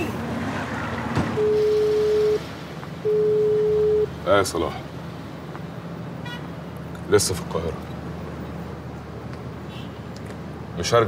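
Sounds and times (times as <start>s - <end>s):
telephone ringback tone: 1.4s - 4.1s.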